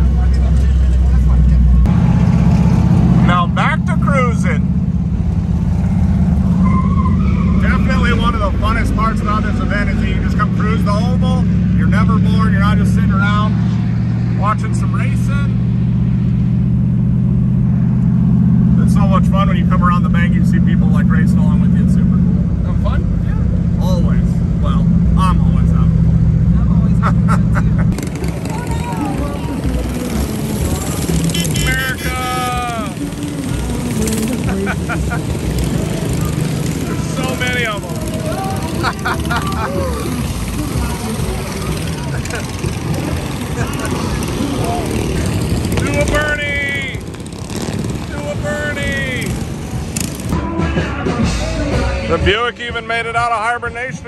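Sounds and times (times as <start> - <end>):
car engine running: 0.0 - 50.5
voices talking: 3.0 - 5.5, 6.2 - 15.7, 18.7 - 54.0.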